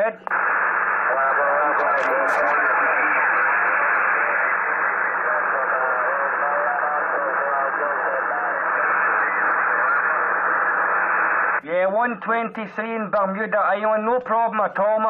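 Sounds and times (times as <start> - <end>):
radio static hiss: 0.0 - 15.0
faint distant radio voice talking: 1.0 - 9.7.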